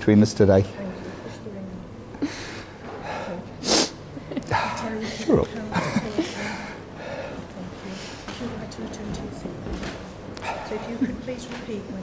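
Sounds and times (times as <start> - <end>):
person sneezing: 3.6 - 4.0.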